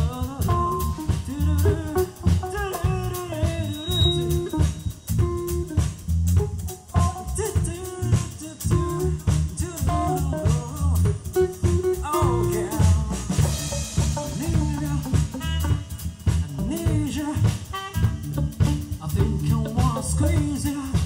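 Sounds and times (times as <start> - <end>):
drum kit beat with rimshots: 0.0 - 21.0
funk band playing: 0.0 - 21.0.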